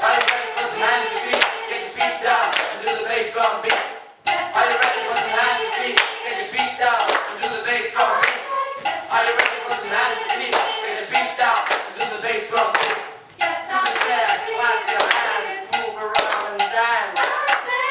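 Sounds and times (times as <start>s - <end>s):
hand claps: 0.0s - 3.0s, 3.6s - 4.0s, 4.6s - 13.2s, 13.8s - 17.9s
sharp percussive taps: 0.0s - 17.9s
voices singing: 0.0s - 17.9s.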